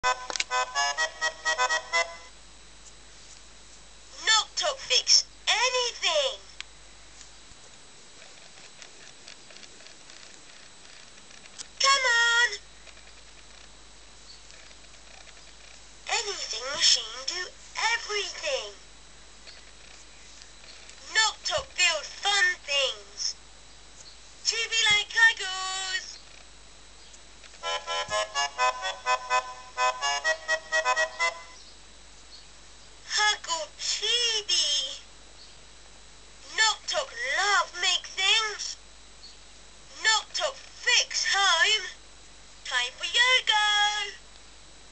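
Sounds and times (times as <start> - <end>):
low hiss: 0.1 - 44.9
toy high-pitched electronic call: 27.6 - 31.6.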